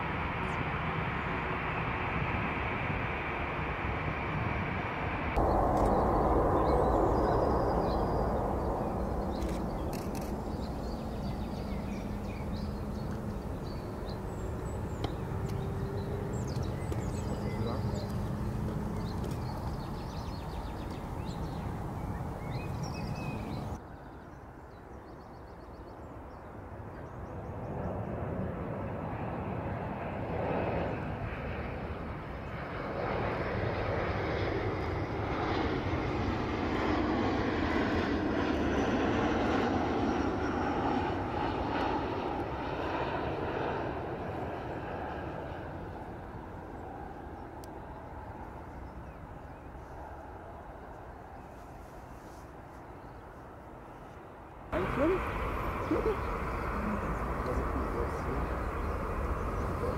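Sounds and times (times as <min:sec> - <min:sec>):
distant jet airliner roar: 0:00.0 - 0:24.6, 0:26.1 - 0:52.7, 0:53.5 - 0:59.9.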